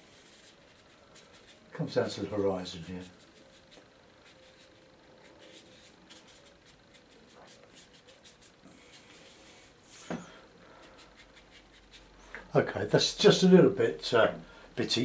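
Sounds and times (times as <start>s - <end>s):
brush strokes on wet paper: 0.0s - 10.0s, 10.7s - 12.2s.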